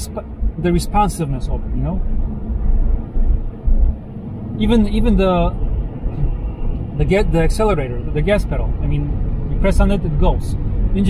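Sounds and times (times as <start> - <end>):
road and engine rumble in car: 0.0 - 11.0.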